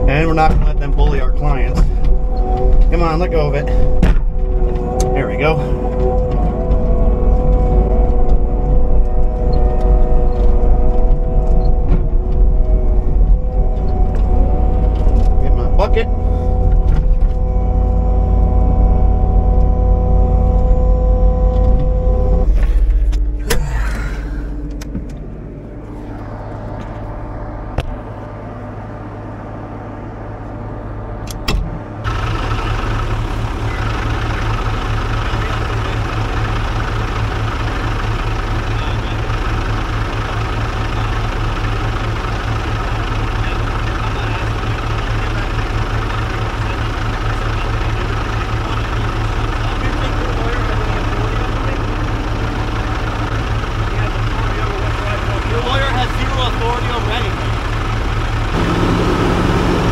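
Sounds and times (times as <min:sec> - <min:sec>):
loader diesel engine running: 0:00.0 - 0:59.9
truck diesel engine idling: 0:00.0 - 0:59.9.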